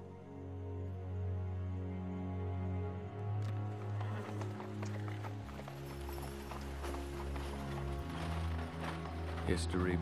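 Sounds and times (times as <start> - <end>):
low music score: 0.0 - 10.0
horse hooves clip-clopping: 3.4 - 10.0.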